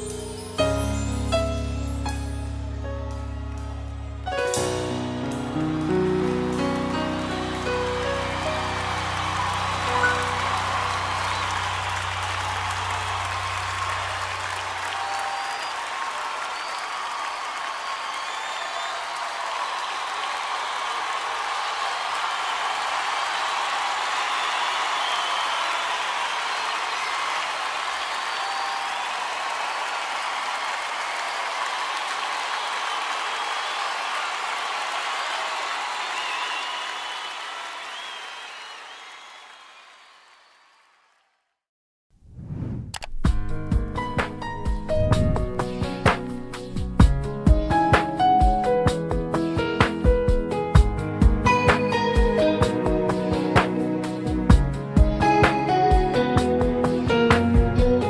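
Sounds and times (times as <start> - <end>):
audience applauding: 3.1 - 41.5, 44.7 - 47.1, 51.4 - 57.8.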